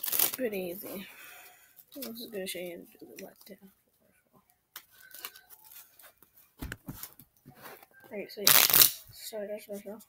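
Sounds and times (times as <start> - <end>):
playing cards clicking and flicking: 0.0 - 0.4, 8.5 - 9.0.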